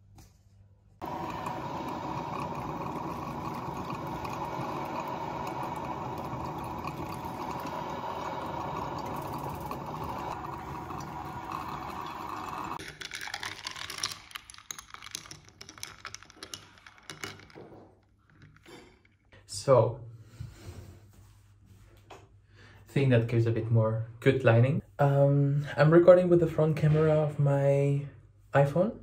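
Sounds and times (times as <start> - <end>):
coffee maker bubbling gurgle: 1.0 - 12.8.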